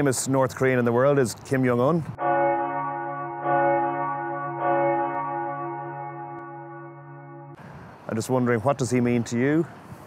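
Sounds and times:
bell-like ringing tone: 2.2s - 7.6s.

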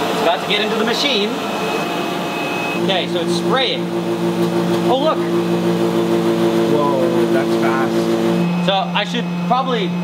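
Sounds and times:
spray dryer mechanical hum: 0.0s - 10.0s
high machine tones: 0.3s - 10.0s.

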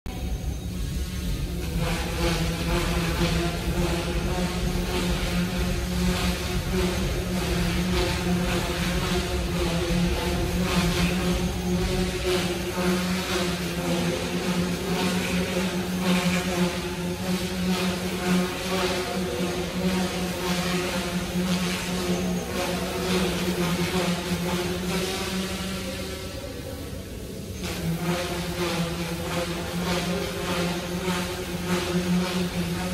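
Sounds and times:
buzzing whine: 0.0s - 32.9s
rc helicopter rotor humming: 0.1s - 32.9s.

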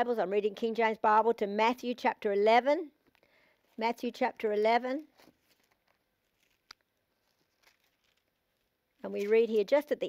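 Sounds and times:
thin pages turning: 5.1s - 9.7s.

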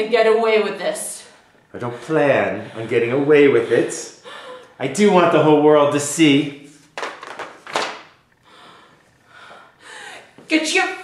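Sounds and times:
woman gasping for breath: 4.2s - 4.8s, 8.4s - 10.4s.

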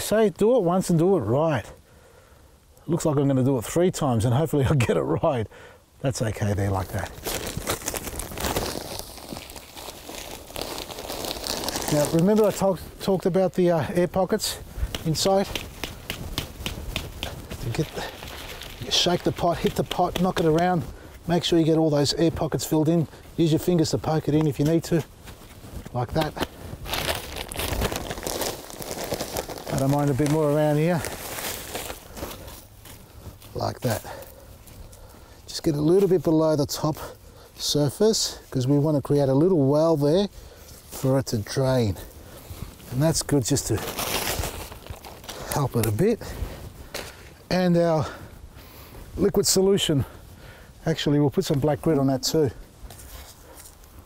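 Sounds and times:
plastic bag crinkling: 6.8s - 13.2s, 14.2s - 20.8s, 26.1s - 32.7s, 43.4s - 46.2s.

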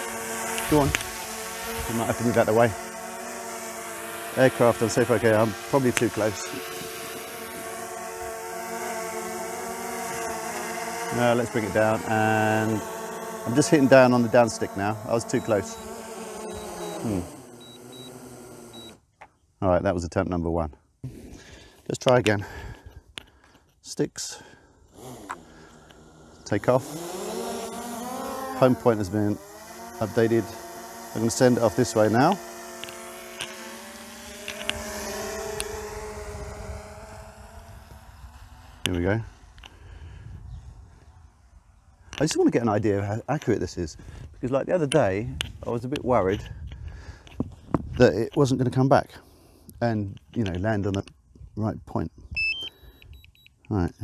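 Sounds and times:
drone propellers whining: 0.0s - 19.1s, 24.4s - 42.4s.

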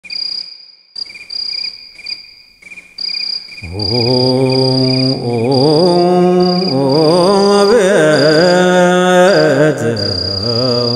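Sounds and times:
cricket chirping: 0.0s - 10.9s.

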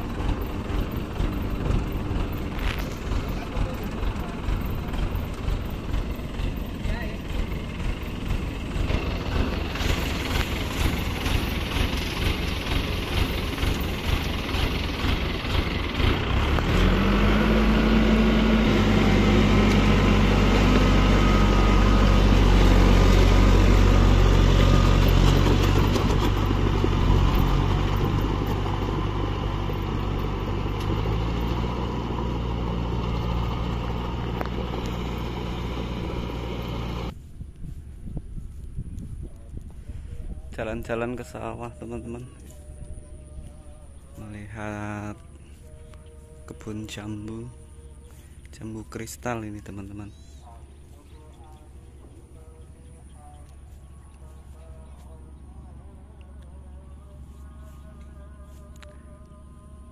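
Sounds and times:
combine harvester machinery: 0.0s - 37.3s, 40.4s - 59.9s
low engine hum: 0.0s - 59.9s.

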